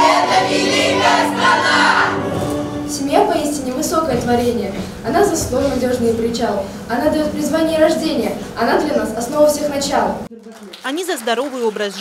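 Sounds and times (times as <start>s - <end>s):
children singing: 0.0s - 2.6s
musical backing track: 0.0s - 10.3s.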